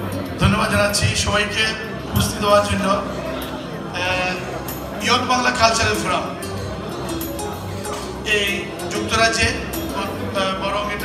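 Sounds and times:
man speaking through pa speakers: 0.3 - 6.6, 8.0 - 11.0.

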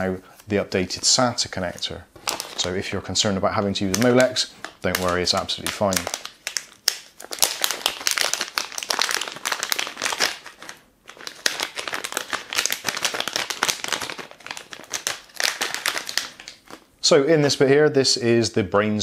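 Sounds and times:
plastic bag crinkling: 0.6 - 16.9.

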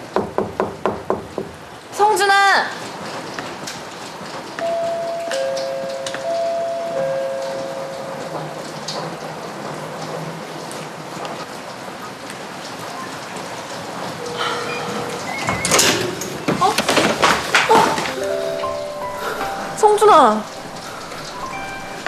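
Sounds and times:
steady rain-like hiss: 0.0 - 22.0.

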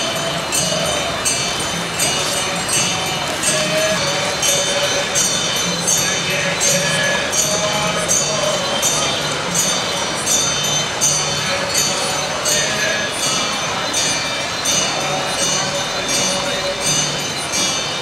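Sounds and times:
jingling metal cymbals: 0.0 - 18.0
person chanting: 0.0 - 18.0.

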